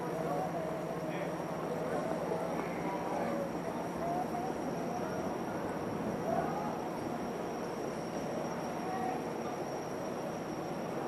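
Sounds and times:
fire engines idling: 0.0 - 11.0
street background noise: 0.0 - 11.0.

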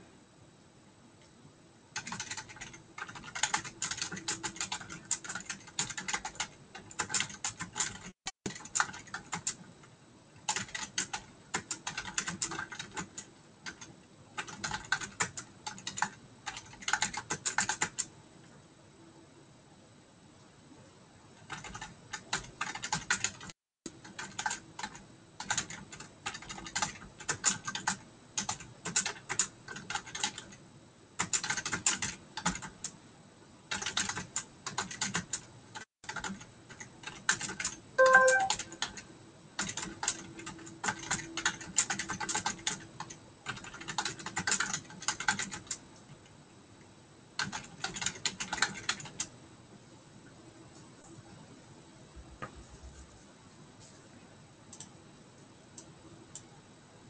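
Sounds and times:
typing on computer keyboard: 2.0 - 9.7, 10.4 - 18.1, 21.4 - 30.6, 31.2 - 33.0, 33.7 - 45.8, 47.4 - 49.3
brief electronic tone: 38.0 - 38.8.

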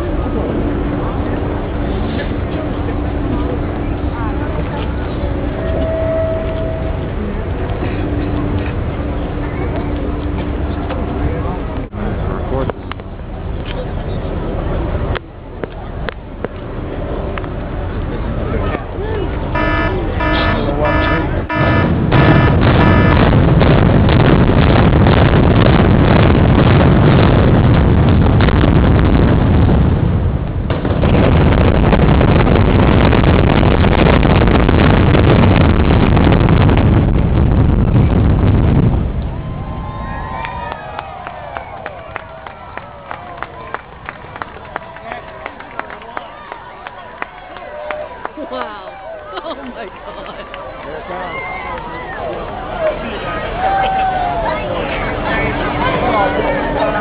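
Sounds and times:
crowd chatter: 0.0 - 24.1, 36.2 - 57.0
building collapse rumble: 0.0 - 48.4
short signal tones: 19.6 - 23.3
demolition charges cracking: 19.6 - 39.2.

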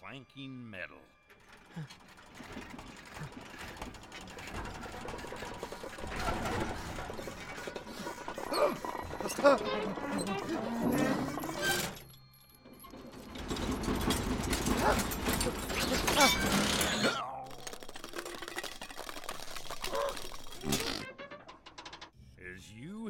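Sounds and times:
metal hook and chain clanking: 1.2 - 22.1
nervous laughter: 1.6 - 11.3.

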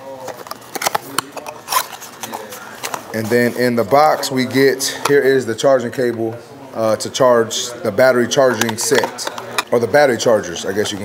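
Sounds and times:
rummaging through cardboard packaging: 0.0 - 3.5.

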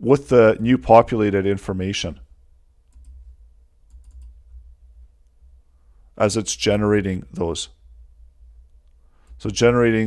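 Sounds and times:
low steady hum: 0.0 - 10.0
computer mouse clicks: 2.9 - 3.2, 3.9 - 4.4.

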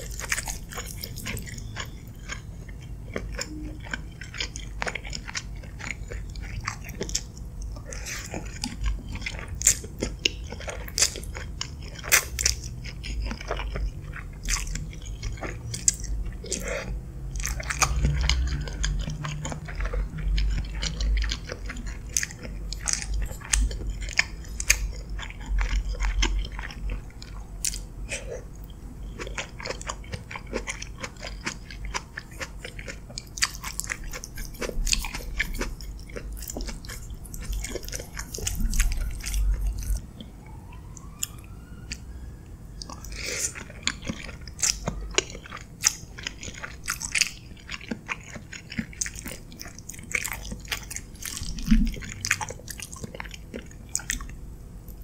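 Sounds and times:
chewing and wet mouth sounds: 0.0 - 55.0.

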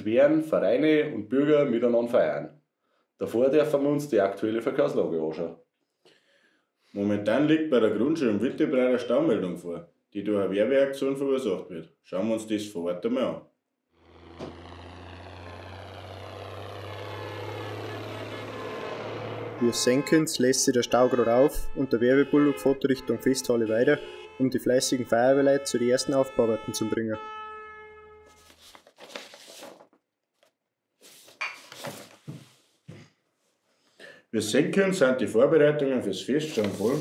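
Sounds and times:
tractor engine: 14.0 - 20.3.

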